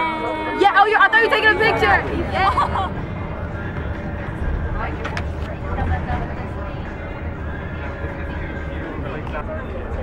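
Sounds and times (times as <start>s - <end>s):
faint voices: 0.0s - 10.0s
low rumble inside moving coach: 0.0s - 10.0s.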